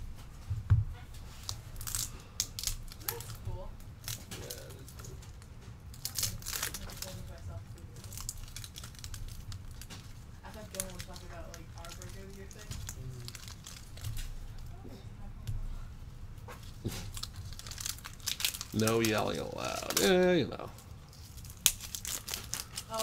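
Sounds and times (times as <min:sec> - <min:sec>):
cellophane wrapper crinkling: 0:01.2 - 0:14.7, 0:16.6 - 0:23.0.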